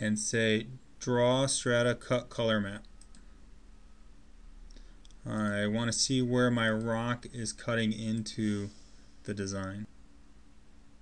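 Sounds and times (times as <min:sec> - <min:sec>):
low room hiss: 0:00.0 - 0:11.0
computer mouse clicks: 0:02.8 - 0:03.3.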